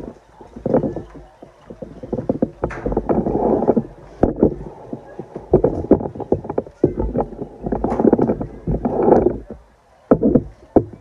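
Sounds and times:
bass drums beating: 0.0s - 9.5s.

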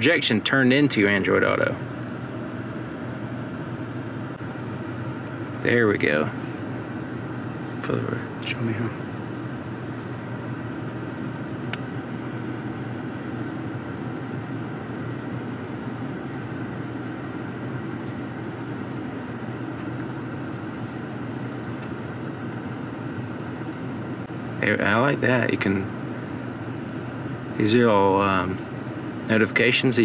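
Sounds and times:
car climate fan humming: 0.0s - 30.0s.

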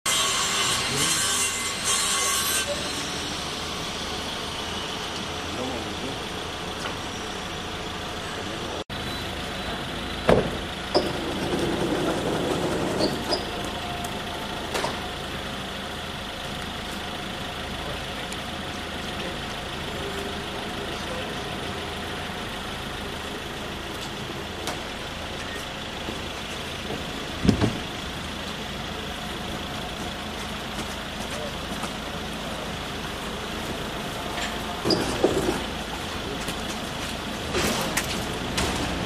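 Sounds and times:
street noise: 0.1s - 39.0s
vehicle engine running: 3.0s - 39.0s.

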